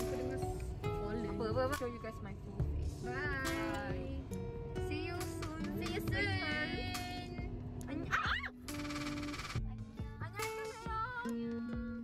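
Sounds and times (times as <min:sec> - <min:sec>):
music with held notes: 0:00.0 - 0:12.0.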